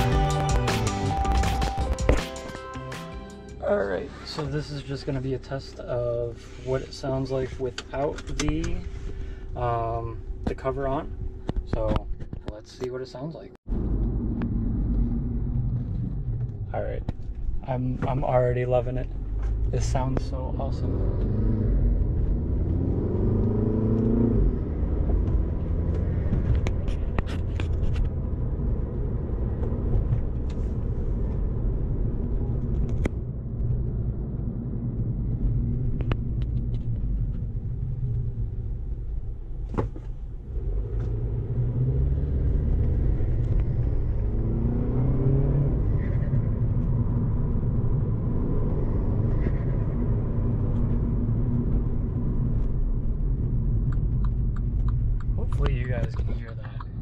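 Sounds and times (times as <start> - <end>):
car engine rumble: 0.0 - 57.0.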